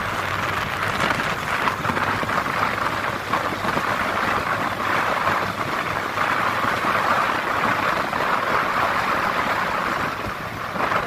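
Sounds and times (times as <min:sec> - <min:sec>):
motorbike engine hum: 0:00.0 - 0:11.0
road noise: 0:00.0 - 0:11.0.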